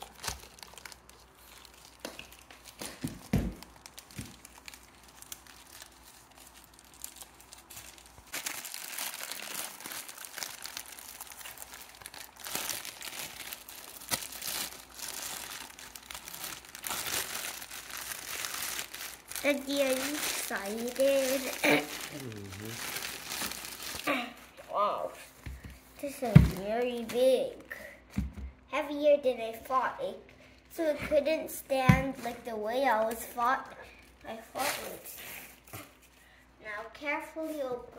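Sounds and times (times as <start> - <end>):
plastic bag crinkling: 0.0 - 24.8.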